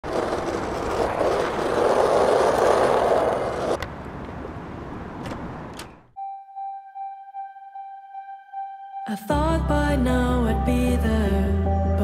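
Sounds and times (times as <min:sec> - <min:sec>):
skateboard wheels rolling on pavement: 0:00.0 - 0:05.8.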